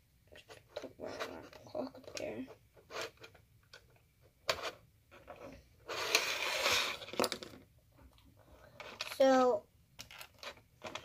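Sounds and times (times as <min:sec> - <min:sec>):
rustling scrape on tabletop: 0:05.4 - 0:07.1
plastic pieces clicking and tapping: 0:07.0 - 0:09.4, 0:10.0 - 0:11.0.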